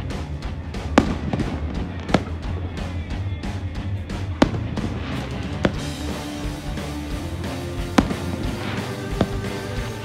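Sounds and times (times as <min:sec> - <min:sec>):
music with steady beat: 0:00.0 - 0:10.0
firework bang: 0:08.0 - 0:09.7.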